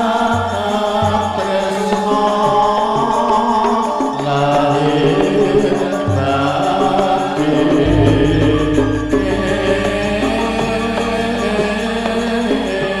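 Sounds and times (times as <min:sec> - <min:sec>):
man chanting: 0:00.0 - 0:13.0
gongs and metallophones ringing: 0:03.8 - 0:13.0
deep low ringing note: 0:07.8 - 0:12.1.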